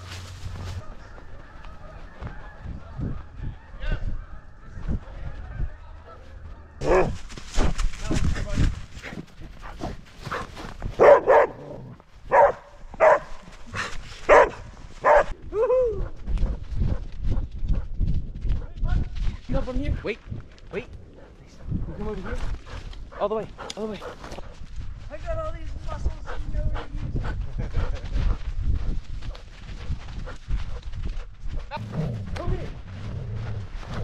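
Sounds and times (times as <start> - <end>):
dog barking: 6.8 - 7.2, 11.0 - 13.4, 14.3 - 15.4.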